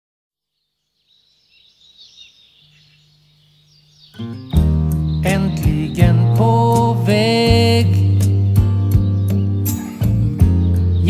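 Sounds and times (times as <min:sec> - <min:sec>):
faint birds chirping: 0:00.4 - 0:11.0.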